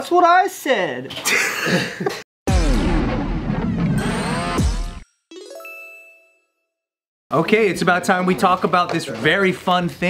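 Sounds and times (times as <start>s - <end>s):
bright rising chime: 3.9s - 6.6s.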